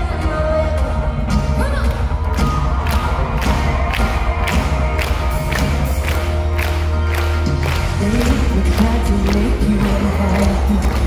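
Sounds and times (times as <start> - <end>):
heavy bass: 0.0 - 11.0
live pop band playing: 0.0 - 11.0
steady drum beat: 0.0 - 11.0
crowd cheering: 1.5 - 11.0.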